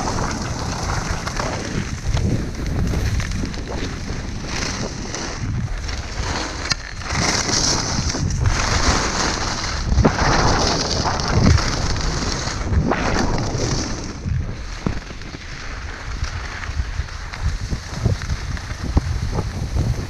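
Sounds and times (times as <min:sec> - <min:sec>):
skis scraping on snow: 0:00.0 - 0:20.0
wind buffeting microphone: 0:00.0 - 0:20.0.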